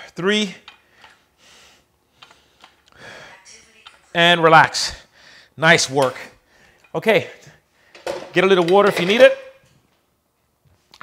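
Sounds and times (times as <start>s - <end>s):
dumbbells clicking: 0.5s - 1.3s.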